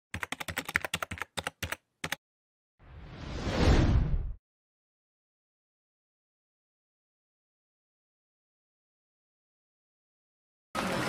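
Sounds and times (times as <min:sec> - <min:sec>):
keyboard typing clicks: 0:00.1 - 0:02.2.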